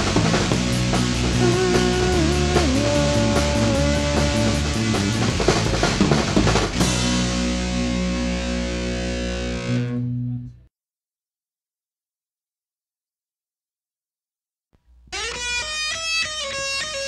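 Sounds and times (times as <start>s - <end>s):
drum kit: 0.0s - 9.9s
distorted electric guitar: 0.0s - 10.6s, 15.1s - 17.0s
bass guitar: 0.0s - 10.7s, 14.9s - 17.0s.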